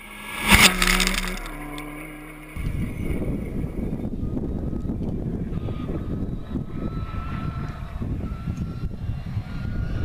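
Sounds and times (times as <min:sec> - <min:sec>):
rally car passing at speed: 0:00.0 - 0:03.4
distant car engine: 0:00.0 - 0:06.5
noisy rumble: 0:00.0 - 0:08.2.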